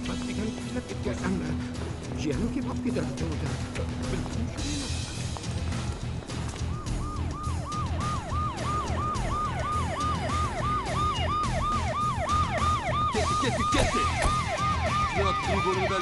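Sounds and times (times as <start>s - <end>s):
music with low pulsing beat: 0.0s - 16.0s
police siren yelping: 6.6s - 16.0s.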